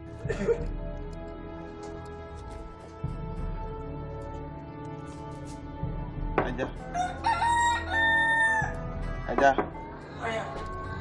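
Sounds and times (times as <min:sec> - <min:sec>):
rooster crowing: 0:06.9 - 0:08.8.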